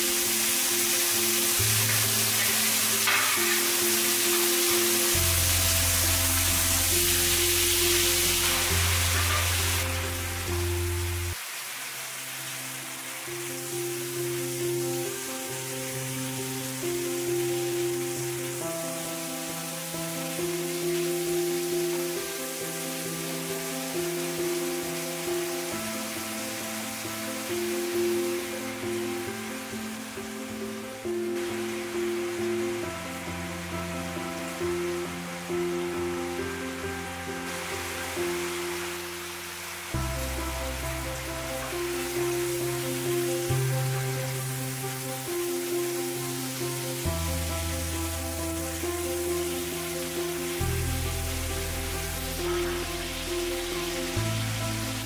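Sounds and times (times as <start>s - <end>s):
background music: 0.0s - 55.0s
fish sizzling in oil: 0.0s - 55.0s.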